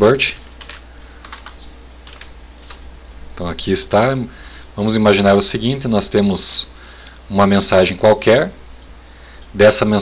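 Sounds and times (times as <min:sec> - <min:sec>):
low steady hum: 0:00.0 - 0:10.0
computer keyboard keystrokes: 0:00.6 - 0:02.8.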